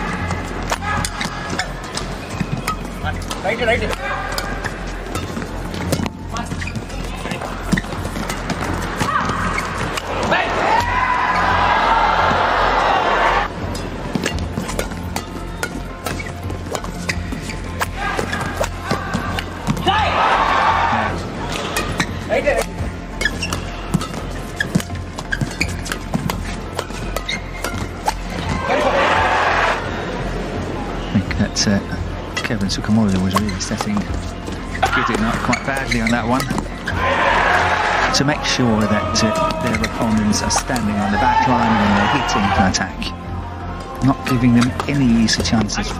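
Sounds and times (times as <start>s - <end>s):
crowd cheering: 8.5s - 13.5s, 17.9s - 21.9s, 28.3s - 30.2s, 36.9s - 42.8s
racket striking shuttlecock: 13.7s - 19.9s, 21.5s - 28.6s.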